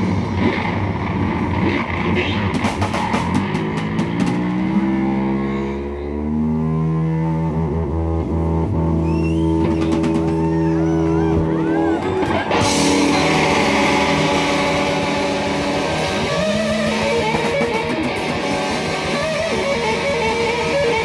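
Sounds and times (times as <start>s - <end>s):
drum kit: 0.0s - 5.2s, 9.1s - 21.0s
electric guitar: 0.0s - 21.0s.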